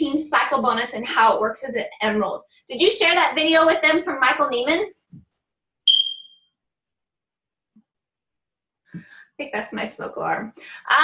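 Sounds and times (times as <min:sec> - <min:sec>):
smoke alarm chirp: 0:05.9 - 0:06.6.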